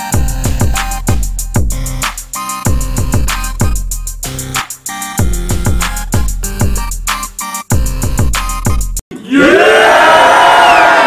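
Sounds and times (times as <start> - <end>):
crowd of men yelling and cheering: 9.1 - 11.0.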